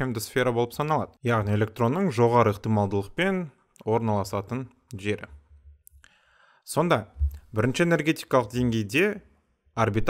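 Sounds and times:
narrator speaking: 0:00.0 - 0:05.4, 0:06.6 - 0:09.2, 0:09.8 - 0:10.0.

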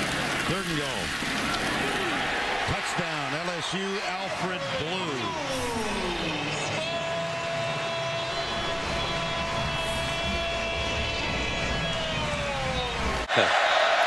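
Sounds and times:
stadium crowd noise: 0:00.0 - 0:12.4, 0:13.2 - 0:14.0
long held note sliding down: 0:05.3 - 0:13.0.

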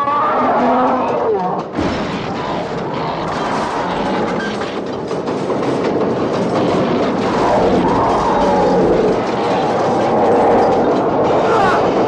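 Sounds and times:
train clattering on tracks: 0:00.0 - 0:12.0.

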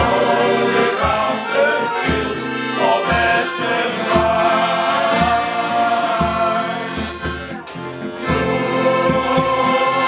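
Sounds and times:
accordion: 0:00.0 - 0:10.0
low bass beat: 0:00.0 - 0:10.0
male choir singing a sea shanty: 0:00.0 - 0:10.0.

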